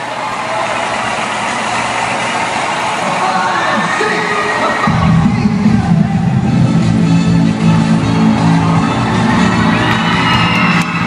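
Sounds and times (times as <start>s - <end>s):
arena crowd cheering: 0.0s - 11.0s
music with heavy beat: 4.8s - 11.0s.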